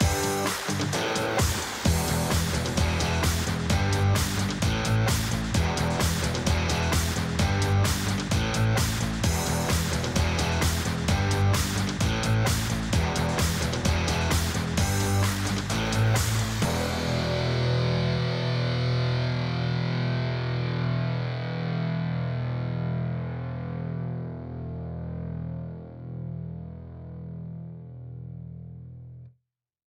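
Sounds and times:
rock music with distorted guitar: 0:00.0 - 0:28.2.

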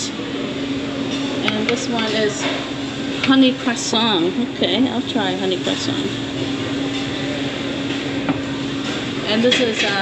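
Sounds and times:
restaurant room hum: 0:00.0 - 0:10.0.

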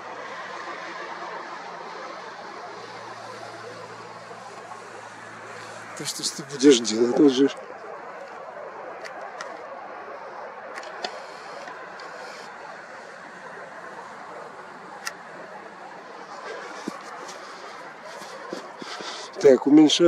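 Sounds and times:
outdoor evening background noise: 0:00.0 - 0:20.0.

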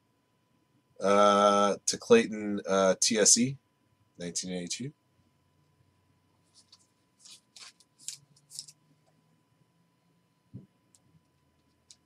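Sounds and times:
card and plastic rustling: 0:06.5 - 0:08.8.

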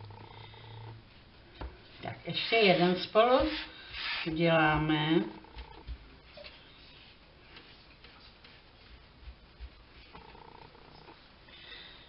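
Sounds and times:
hands patting dough: 0:03.2 - 0:04.2, 0:05.6 - 0:10.4.

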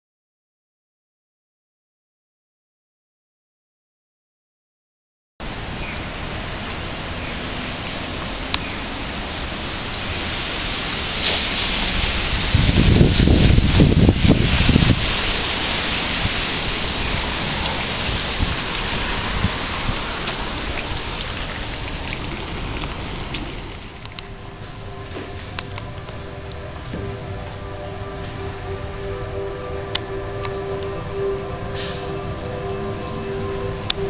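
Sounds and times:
rain hissing: 0:05.4 - 0:34.0
low rumble: 0:11.7 - 0:34.0.

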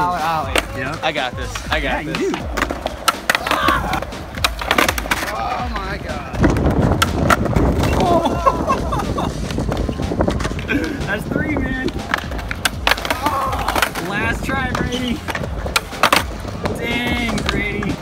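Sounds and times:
skateboard wheels rolling on concrete: 0:00.0 - 0:18.0
skateboard pops and clacks: 0:01.5 - 0:05.6, 0:06.3 - 0:08.1, 0:11.8 - 0:18.0.

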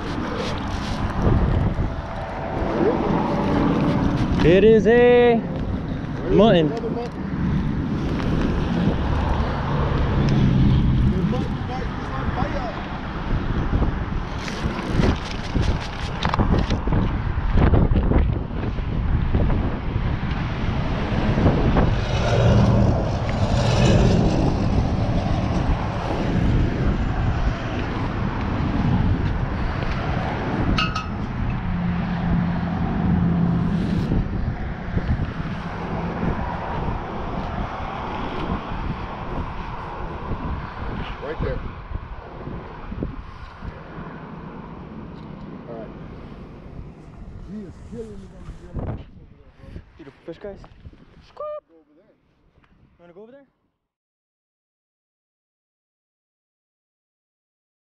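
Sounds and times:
road traffic roar: 0:00.0 - 0:51.2
wind on microphone: 0:00.0 - 0:51.6.

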